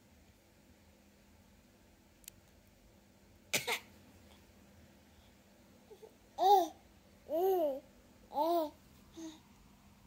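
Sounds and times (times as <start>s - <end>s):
faint click: 2.2s - 2.6s
baby coughing: 3.5s - 3.9s.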